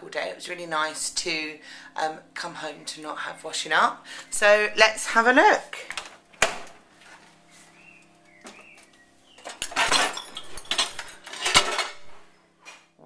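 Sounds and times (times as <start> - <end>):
crockery and dishwasher rack clattering: 9.4 - 12.3.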